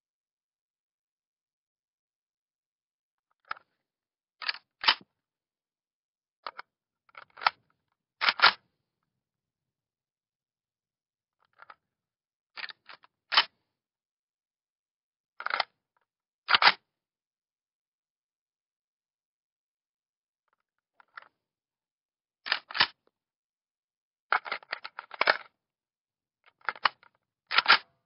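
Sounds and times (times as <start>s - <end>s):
gun magazine metal clicks: 26.6s - 27.9s.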